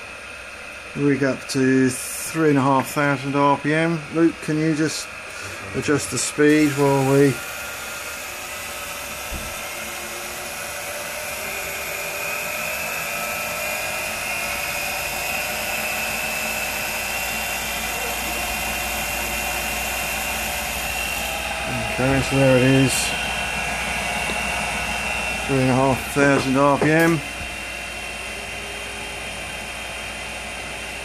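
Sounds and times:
motor whine: 0.0 - 31.0.

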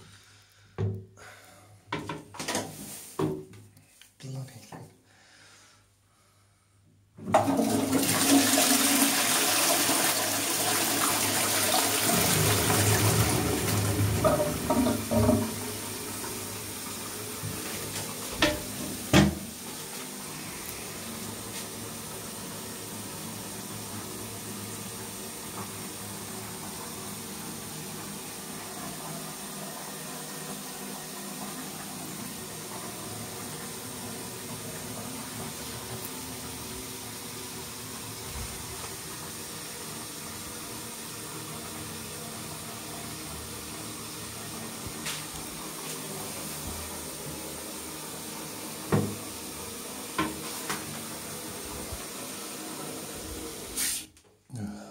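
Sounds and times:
cistern refilling with water: 7.2 - 54.1.

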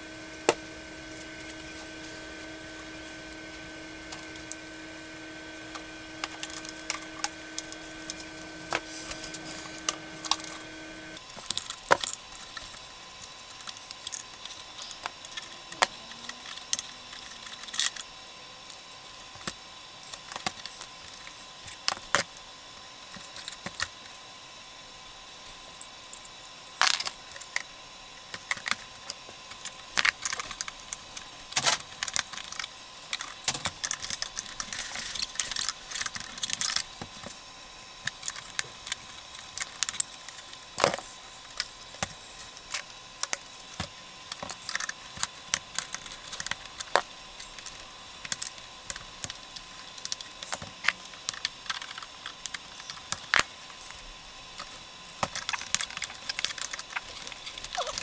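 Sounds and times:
faint steady hum: 0.0 - 58.0
plastic parts clicking and rattling: 11.3 - 22.2, 25.9 - 37.4, 38.0 - 54.0, 54.6 - 58.0.

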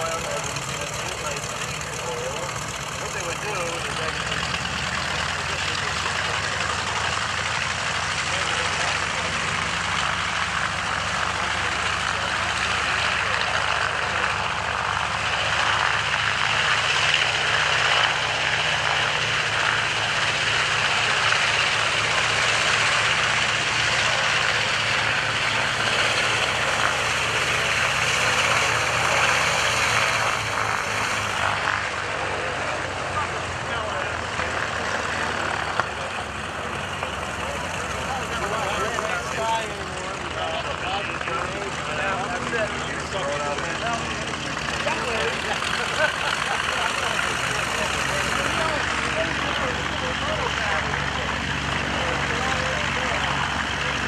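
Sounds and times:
propeller airplane engine drone: 0.0 - 54.0.

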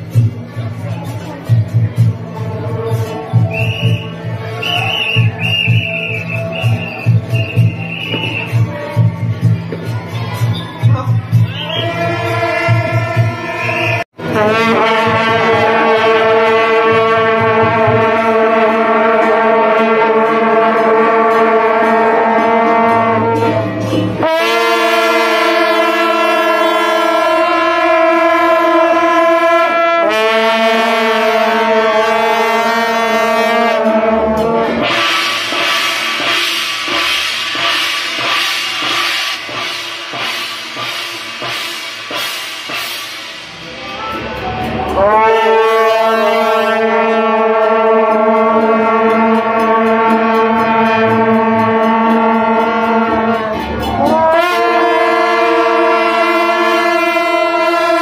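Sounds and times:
brass horns blowing long notes: 2.6 - 8.6, 11.5 - 58.0.

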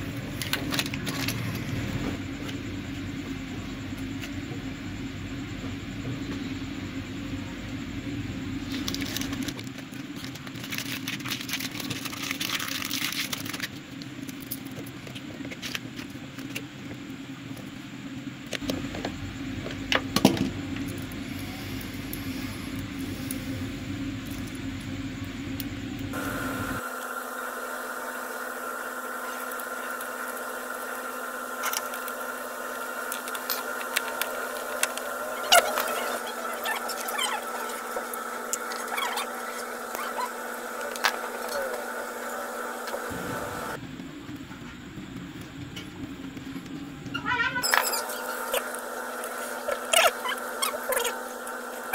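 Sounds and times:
steady background hum: 0.0 - 51.9.

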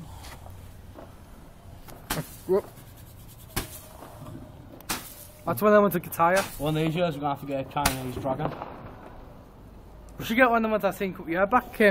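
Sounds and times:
firework bangs: 0.6 - 2.8, 3.4 - 10.5.

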